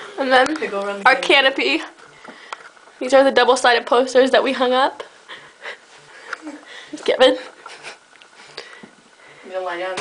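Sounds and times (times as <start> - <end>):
people talking: 0.2 - 2.0, 3.0 - 5.1, 6.4 - 7.5, 9.5 - 10.0.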